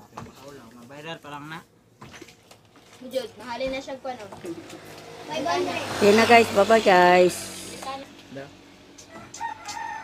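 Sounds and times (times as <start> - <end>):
rooster crowing: 9.1 - 10.0.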